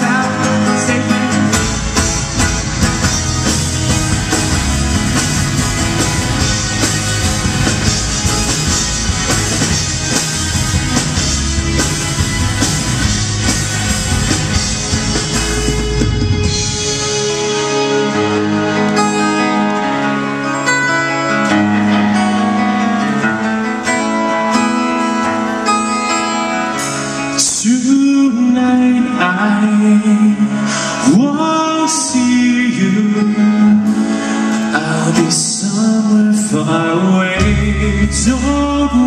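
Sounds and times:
lead guitar melody with bending pitch: 0:00.0 - 0:39.0
rock band playing: 0:00.0 - 0:39.0.

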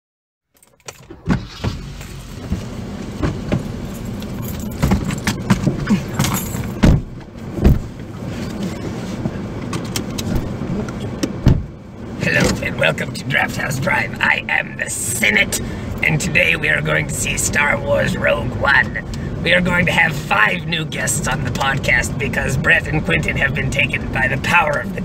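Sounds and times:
clicks and rattles in car cabin: 0:00.6 - 0:14.0, 0:21.2 - 0:22.4
car engine rumble: 0:00.6 - 0:25.0.

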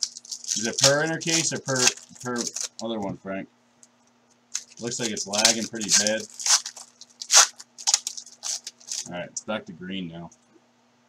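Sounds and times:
foil wrapper tearing and crinkling: 0:00.0 - 0:02.8, 0:04.5 - 0:09.1.

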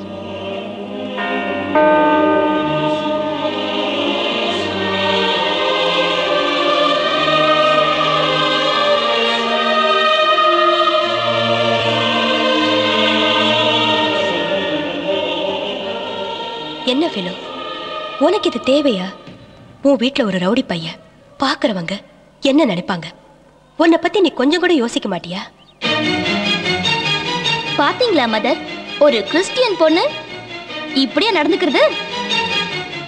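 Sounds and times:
choir singing held chords: 0:00.0 - 0:21.4, 0:25.5 - 0:33.0
deep sustained bass notes: 0:01.2 - 0:05.2.

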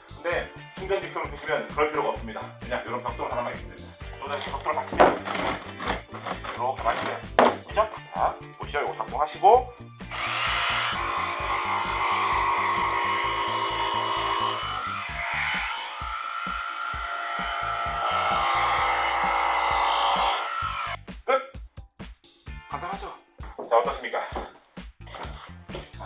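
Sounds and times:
jigsaw cutting plywood: 0:04.4 - 0:07.6, 0:10.1 - 0:21.0.

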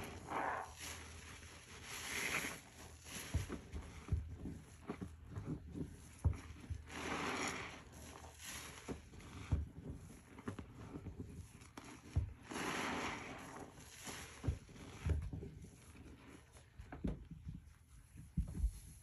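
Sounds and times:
water gushing: 0:00.0 - 0:04.2, 0:06.7 - 0:09.9, 0:11.5 - 0:15.8
wet sponge squelching: 0:00.0 - 0:16.9.

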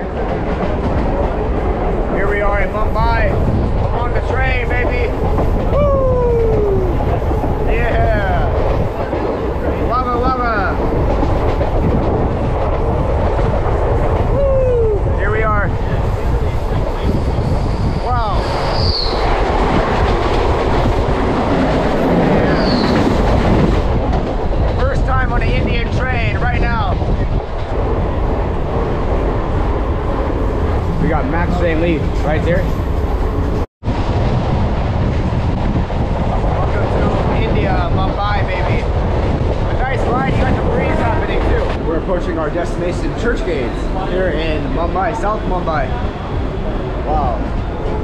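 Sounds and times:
rushing air: 0:00.0 - 0:48.0
train wheels rumbling on rails: 0:00.0 - 0:48.0.

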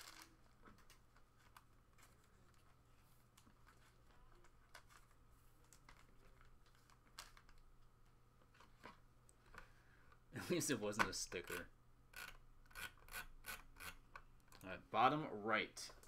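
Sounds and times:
wrapper crinkling and cards handled: 0:00.0 - 0:09.0
low steady hum: 0:00.0 - 0:16.0.

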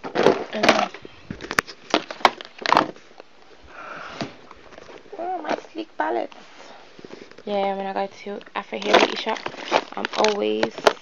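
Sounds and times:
woman humming: 0:05.1 - 0:05.6
containers clicking and knocking: 0:08.4 - 0:11.0.

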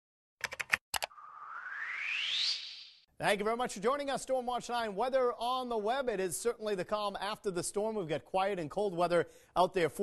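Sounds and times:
rising whoosh: 0:01.1 - 0:03.1.

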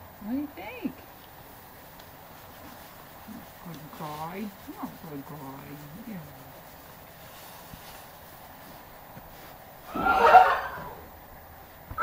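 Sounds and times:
person speaking softly: 0:03.2 - 0:06.8.

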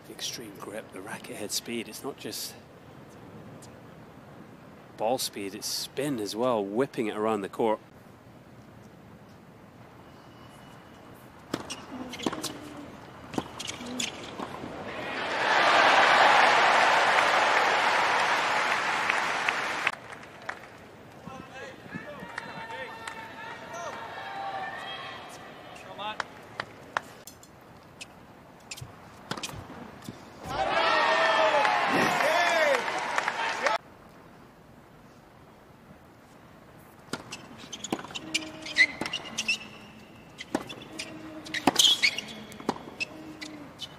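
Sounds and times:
stadium crowd roar: 0:14.8 - 0:20.5, 0:22.0 - 0:26.0, 0:30.4 - 0:33.8
crowd cheering and shouting: 0:14.9 - 0:19.9, 0:30.5 - 0:33.8
racket hitting tennis ball: 0:37.1 - 0:39.2.

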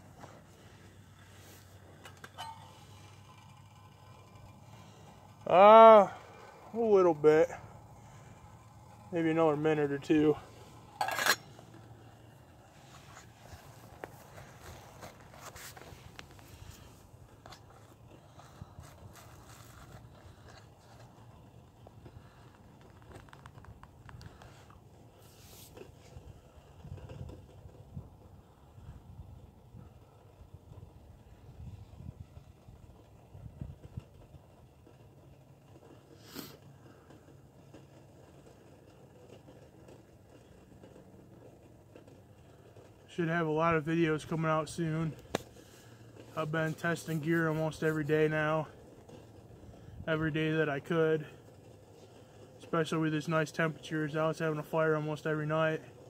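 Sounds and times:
metal lid clanking onto cup: 0:11.0 - 0:11.5.

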